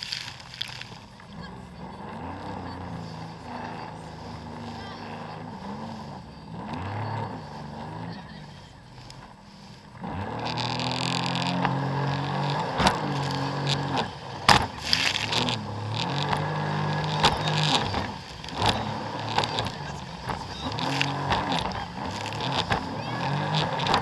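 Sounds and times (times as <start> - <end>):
jet ski engine revving: 0.0 - 24.0.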